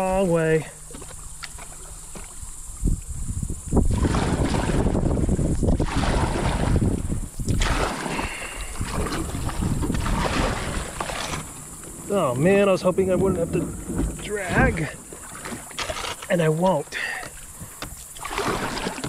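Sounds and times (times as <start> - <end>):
water rushing around kayak: 0.0 - 19.0.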